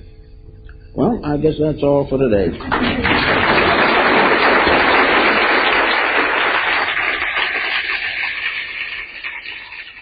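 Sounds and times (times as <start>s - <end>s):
audience applauding: 2.6s - 10.0s.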